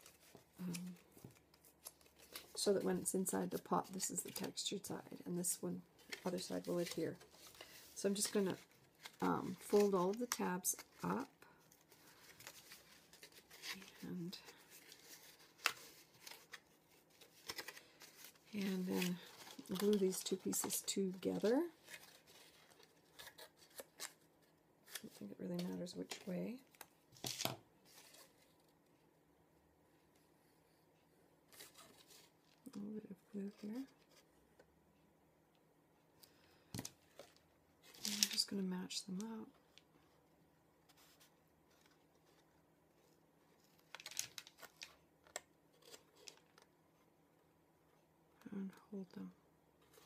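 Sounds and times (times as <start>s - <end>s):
paper rustling: 6.0s - 24.2s.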